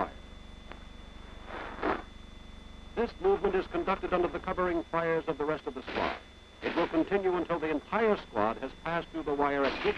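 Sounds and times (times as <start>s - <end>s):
old film soundtrack hum and hiss: 0.0s - 9.9s.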